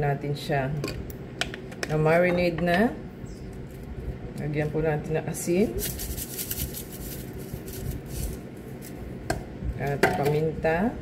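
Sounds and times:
salt shaker rattling: 5.7s - 8.9s.

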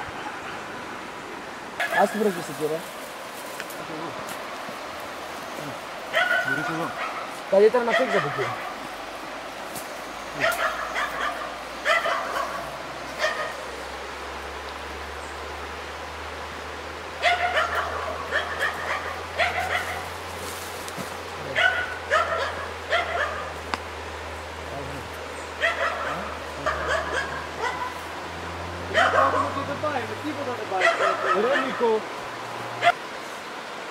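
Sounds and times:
dog yelping and barking: 1.8s - 2.2s, 6.1s - 8.8s, 10.4s - 13.6s, 17.2s - 20.1s, 21.5s - 23.6s, 25.6s - 28.1s, 28.9s - 29.6s, 30.8s - 31.8s, 32.8s - 33.0s.

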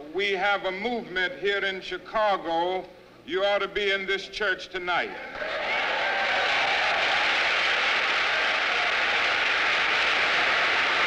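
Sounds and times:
congregation applauding: 5.4s - 11.0s.

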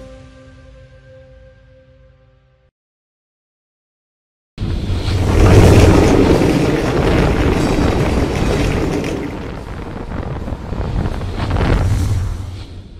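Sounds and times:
deep boom with noisy rumble: 4.6s - 12.9s.

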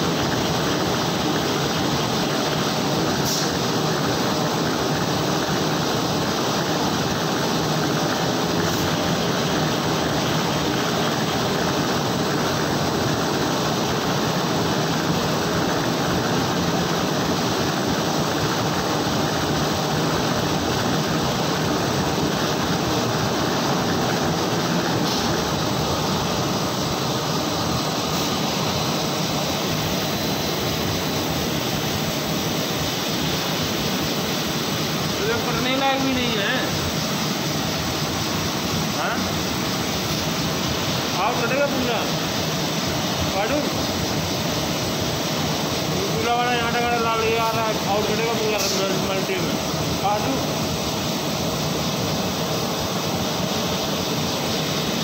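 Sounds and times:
printing press running: 0.0s - 55.0s.

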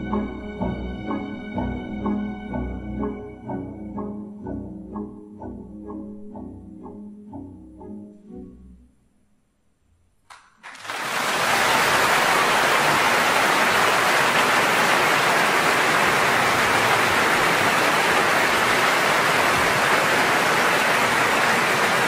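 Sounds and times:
audience applauding: 10.3s - 22.0s.

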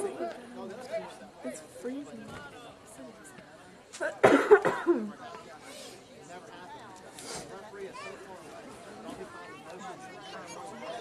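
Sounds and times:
faint crowd chatter: 0.0s - 11.0s
person coughing: 4.2s - 5.0s.

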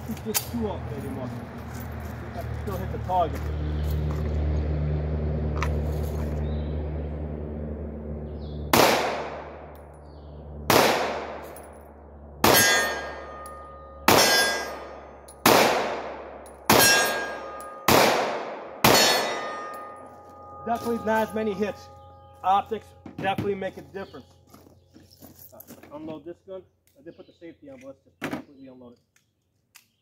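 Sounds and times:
low hum: 0.0s - 25.5s
pistol shots: 8.7s - 9.7s, 10.7s - 11.6s, 12.4s - 13.4s, 14.0s - 19.7s
metallic ring: 11.4s - 15.4s, 16.4s - 17.9s, 18.9s - 25.5s.

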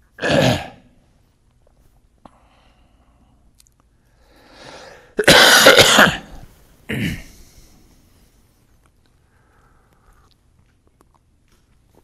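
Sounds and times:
man coughing: 5.2s - 7.5s.

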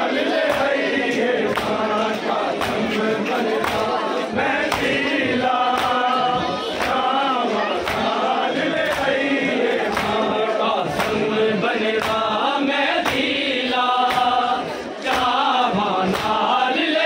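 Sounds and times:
men chanting together: 0.0s - 17.0s
chest-beating slaps in unison: 0.4s - 16.6s.

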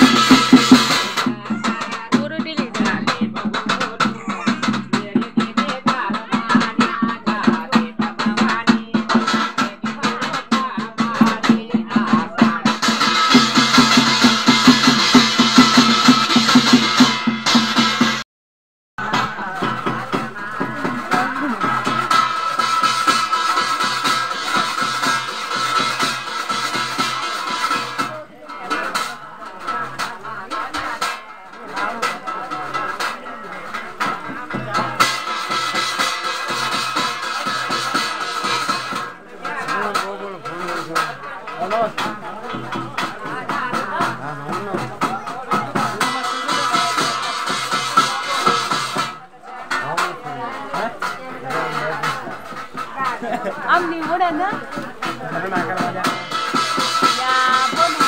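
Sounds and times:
person singing: 0.0s - 17.2s, 19.0s - 26.1s
rhythmic percussion beat: 0.0s - 18.2s, 19.0s - 58.0s.

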